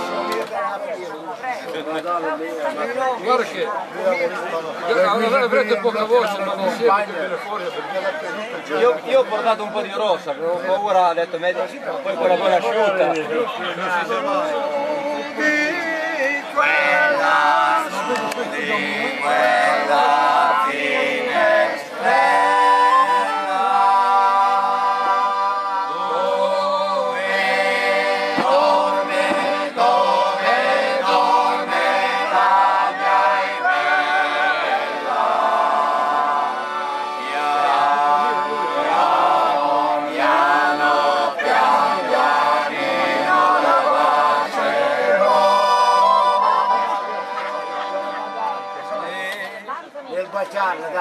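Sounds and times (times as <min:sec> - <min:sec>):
men chattering: 0:00.0 - 0:25.3, 0:37.2 - 0:51.0
men singing folk song: 0:13.7 - 0:48.6.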